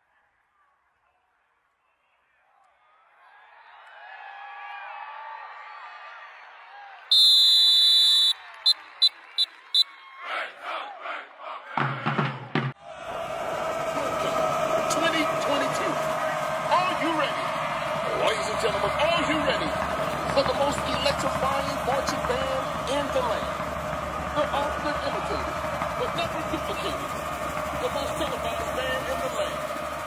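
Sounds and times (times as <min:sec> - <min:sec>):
whistle blasts: 0:07.1 - 0:10.0
crowd chatter: 0:10.2 - 0:30.0
drum strokes: 0:11.8 - 0:30.0
marching band playing: 0:11.8 - 0:30.0.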